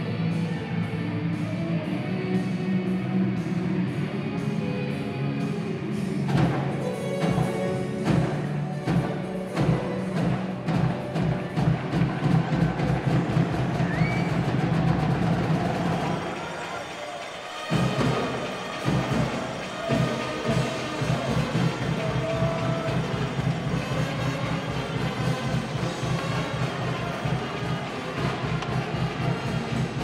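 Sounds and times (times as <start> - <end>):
music with heavy drum beat: 6.1 - 16.3, 17.7 - 30.0.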